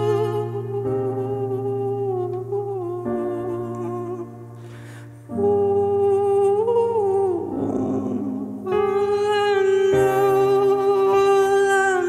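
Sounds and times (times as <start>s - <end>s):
man singing long wordless notes: 0.0s - 12.0s
piano: 0.0s - 12.0s
man taking a breath: 4.6s - 5.3s.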